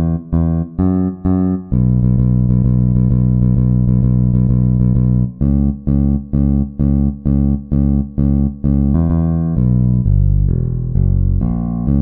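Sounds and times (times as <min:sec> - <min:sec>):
electric bass notes in shuffle rhythm: 0:00.0 - 0:12.0.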